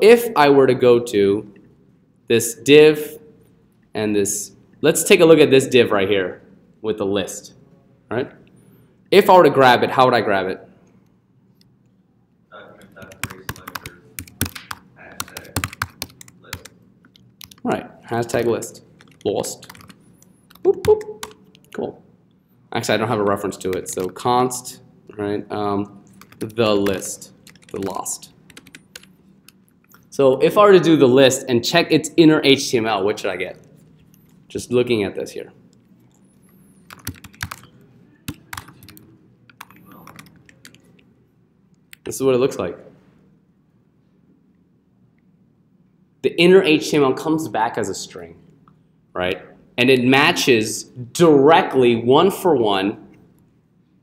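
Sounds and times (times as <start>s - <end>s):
computer keyboard typing: 12.8s - 17.7s, 18.3s - 21.8s, 23.2s - 24.3s, 26.0s - 30.0s, 36.1s - 41.0s.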